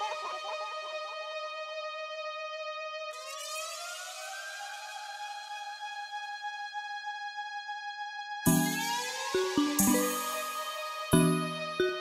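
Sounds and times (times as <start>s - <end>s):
electronic siren-like tone: 8.5s - 12.0s.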